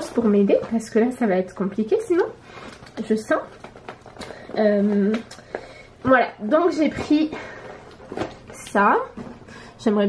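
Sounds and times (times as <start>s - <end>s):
woman speaking: 0.0s - 2.4s, 3.0s - 3.6s, 4.5s - 5.3s, 6.0s - 7.5s, 8.5s - 10.0s.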